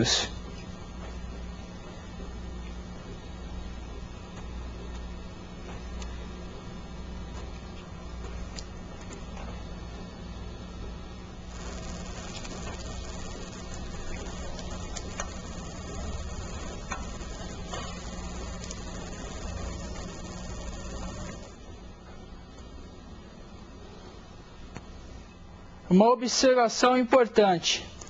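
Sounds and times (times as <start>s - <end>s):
low hum and hiss: 0.0s - 28.0s.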